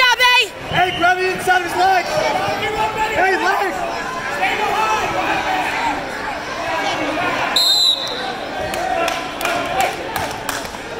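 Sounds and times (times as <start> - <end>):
spectators' voices: 0.0 - 10.9
referee's whistle blast: 7.6 - 8.4.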